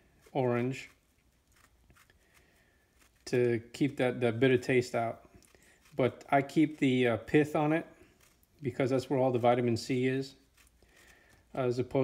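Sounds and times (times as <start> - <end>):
knife scraping orange peel: 0.0 - 3.4, 4.7 - 9.7, 10.4 - 11.6.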